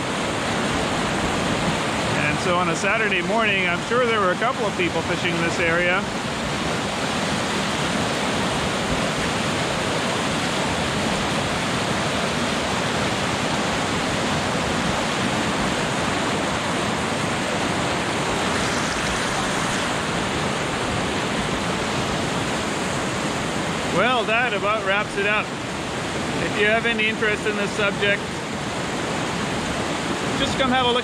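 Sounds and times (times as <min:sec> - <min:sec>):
river rapids rushing: 0:00.0 - 0:31.0.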